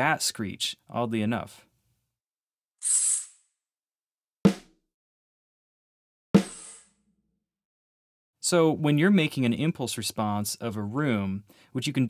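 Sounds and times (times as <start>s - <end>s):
high-pitched bat screech: 2.8s - 3.5s
dry snare drum hit: 4.5s - 4.7s, 6.4s - 6.8s.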